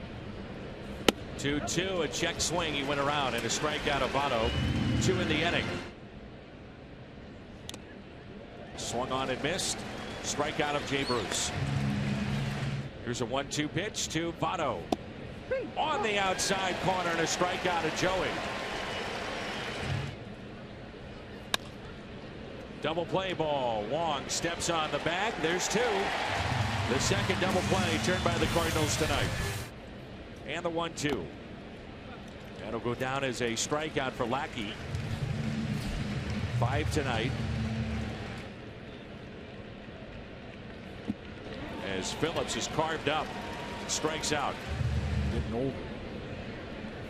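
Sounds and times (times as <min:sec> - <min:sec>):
stadium crowd noise: 0:00.0 - 0:06.0, 0:06.8 - 0:29.8, 0:30.6 - 0:47.0
crowd cheering: 0:02.5 - 0:05.8, 0:08.8 - 0:12.9, 0:15.8 - 0:20.2, 0:24.1 - 0:29.6, 0:41.5 - 0:45.8.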